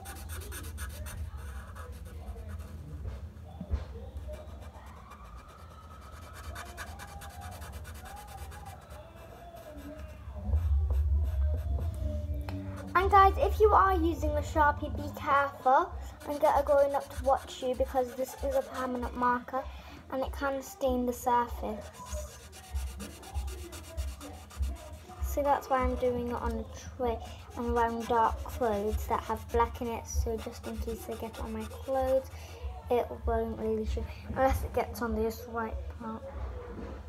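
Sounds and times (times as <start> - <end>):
marker scratching on paper: 0.0 - 2.8, 4.3 - 11.8, 16.1 - 19.3, 21.6 - 32.3
low rumble: 10.4 - 16.1.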